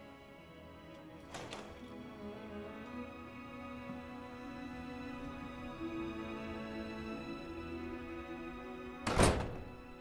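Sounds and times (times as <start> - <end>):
soft music with held notes: 0.0 - 10.0
heavy door shutting: 1.2 - 2.0, 9.0 - 10.0.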